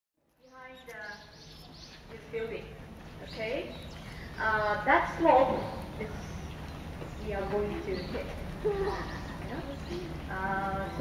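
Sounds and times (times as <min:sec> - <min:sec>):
small bird chirping: 0:00.3 - 0:02.2, 0:03.1 - 0:11.0.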